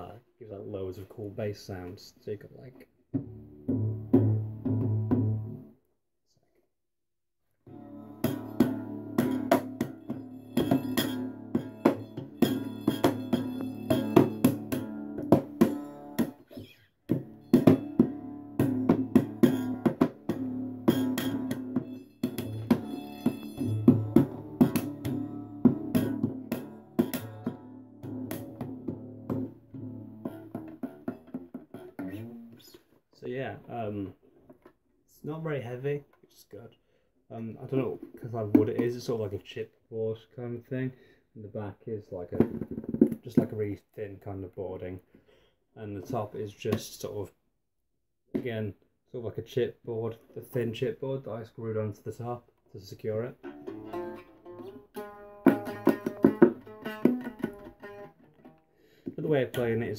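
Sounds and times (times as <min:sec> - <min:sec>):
plucked string instrument: 0:03.1 - 0:05.7, 0:07.7 - 0:32.9, 0:53.1 - 0:59.9
ringing drone strings: 0:08.4 - 0:15.2, 0:20.9 - 0:25.7.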